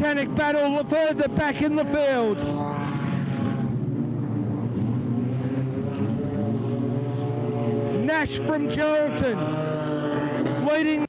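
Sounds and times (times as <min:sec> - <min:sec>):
sprint car engines running hard: 0:00.0 - 0:11.0.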